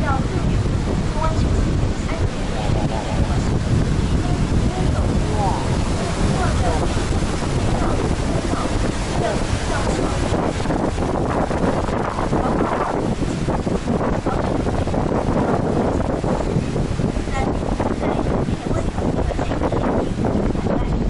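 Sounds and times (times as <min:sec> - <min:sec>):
churning water rushing: 0:00.0 - 0:21.0
wind buffeting microphone: 0:00.0 - 0:21.0.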